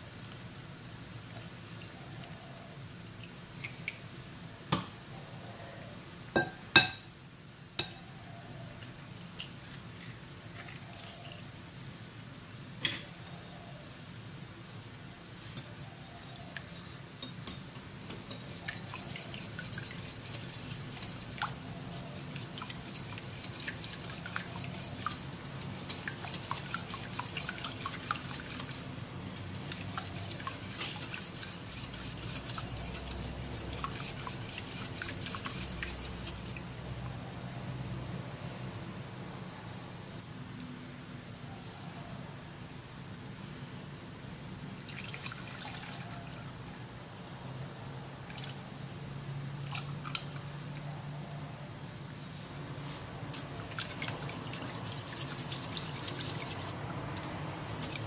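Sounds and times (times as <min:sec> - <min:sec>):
sugar and water bubbling in pan: 0:00.0 - 0:39.2, 0:53.2 - 0:58.0
whisk beating eggs in glass bowl: 0:16.0 - 0:28.9, 0:29.5 - 0:36.6, 0:53.4 - 0:58.0.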